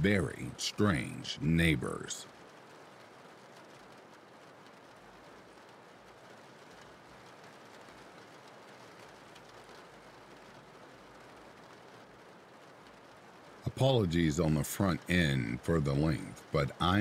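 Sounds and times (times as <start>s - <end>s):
faint steady rain: 0.0s - 17.0s.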